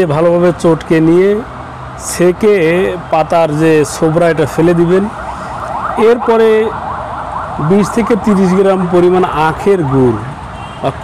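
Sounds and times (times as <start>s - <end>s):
man speaking: 0.0s - 5.2s, 6.0s - 6.8s, 7.6s - 11.0s.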